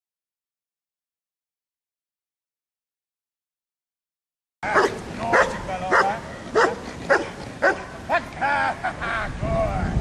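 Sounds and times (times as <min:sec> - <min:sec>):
dog barking sharply: 0:04.7 - 0:07.9.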